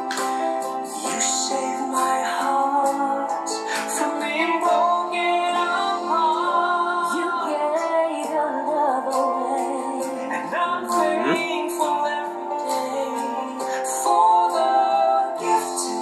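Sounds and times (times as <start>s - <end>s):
instrumental backing: 0.0s - 16.0s
man and woman singing duet: 1.0s - 16.0s.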